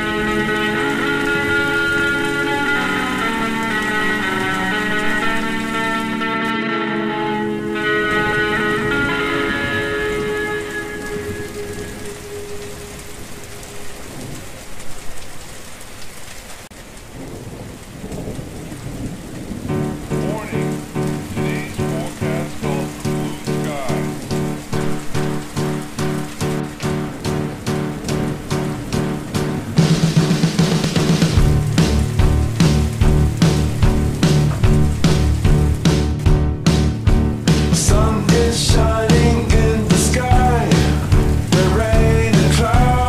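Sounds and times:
pulsing chord: 0.0 - 13.8
slowed reverb-heavy music: 0.0 - 15.1, 19.2 - 43.0
steady rain: 0.0 - 43.0.

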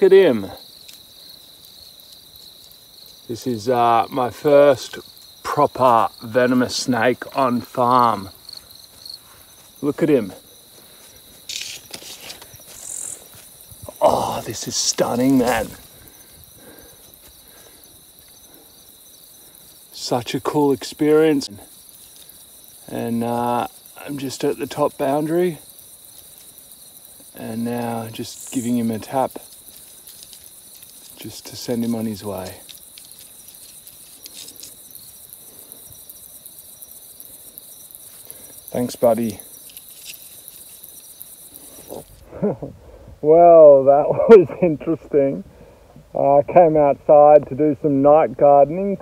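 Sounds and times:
night insects chirping: 0.0 - 49.0.

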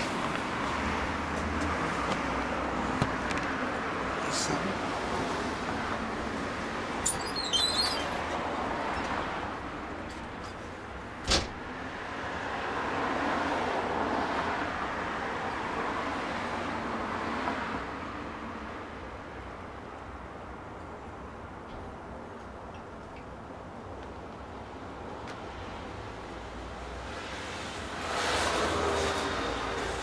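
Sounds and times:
road traffic passing: 0.0 - 30.0
high chirps: 7.0 - 8.4.

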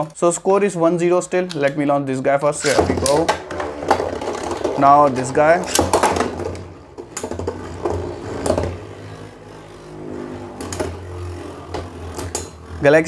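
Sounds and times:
spinning tops whirring: 2.6 - 13.0.

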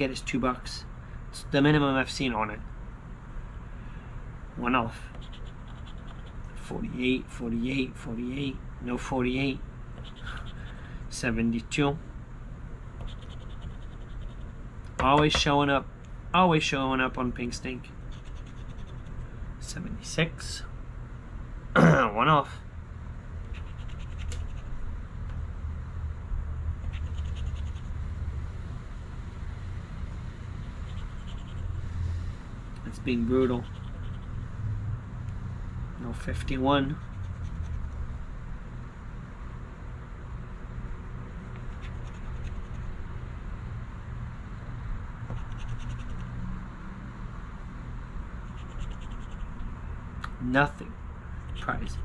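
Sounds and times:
steady low hum: 0.0 - 52.0
coin scraping scratch card: 5.2 - 6.4, 13.0 - 14.5, 18.1 - 19.2, 23.5 - 24.7, 26.8 - 27.9, 45.4 - 46.3.

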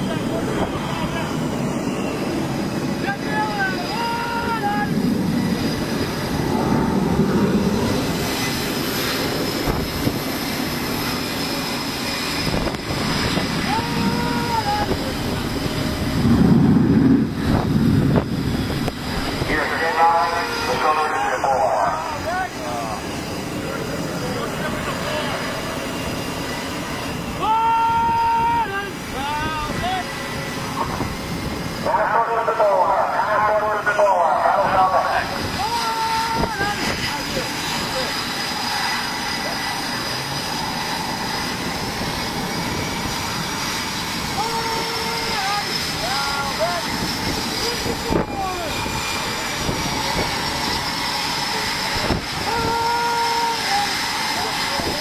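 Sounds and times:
wind rumble: 0.0 - 53.2
aircraft engine noise: 0.0 - 55.0
indistinct voices: 19.0 - 23.1.

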